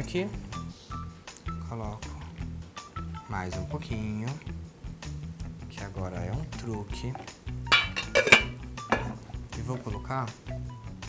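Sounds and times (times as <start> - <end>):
pot knocking down: 7.2 - 9.3
metal lid clattering on pot: 7.7 - 9.3.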